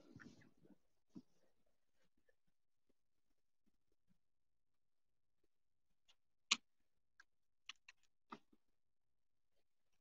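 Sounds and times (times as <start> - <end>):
faint irregular clicks and taps: 3.6 - 8.7.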